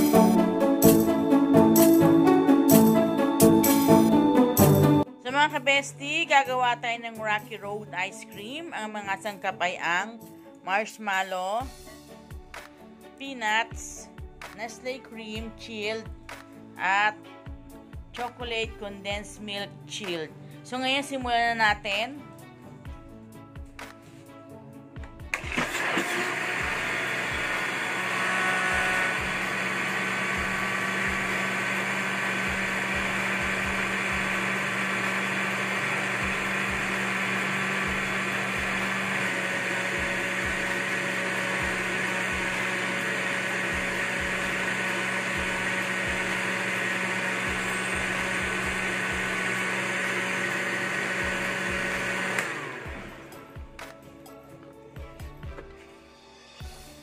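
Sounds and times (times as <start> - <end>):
blender running: 25.3 - 53.4.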